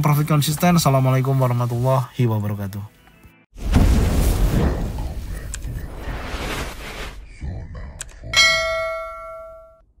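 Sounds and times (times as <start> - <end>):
bright bell-like ding: 8.4 - 9.8.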